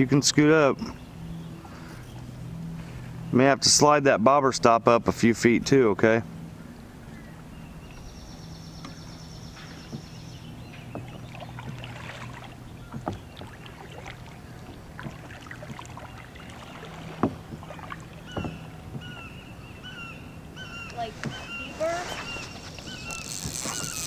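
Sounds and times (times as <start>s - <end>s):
steady low hum: 0.0s - 24.0s
bird calls: 6.6s - 24.0s
light water sounds: 8.8s - 19.8s, 20.8s - 24.0s
knocks against kayak hull: 9.8s - 10.2s, 10.8s - 12.3s, 12.9s - 13.7s, 14.6s - 19.2s.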